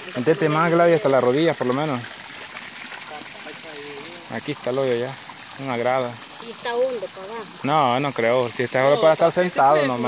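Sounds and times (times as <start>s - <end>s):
water flowing and spraying into pool: 0.0s - 10.0s.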